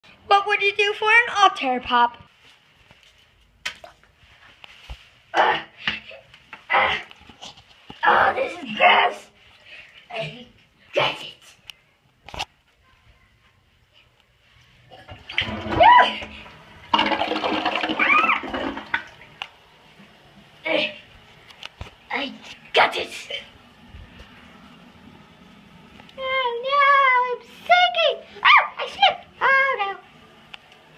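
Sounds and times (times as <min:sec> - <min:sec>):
high-pitched wordless cries: 0:17.8 - 0:18.7, 0:26.2 - 0:30.1.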